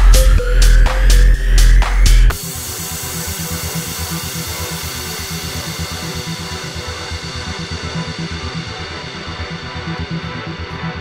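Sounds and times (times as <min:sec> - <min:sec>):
background music with low pulse: 0:00.0 - 0:11.0.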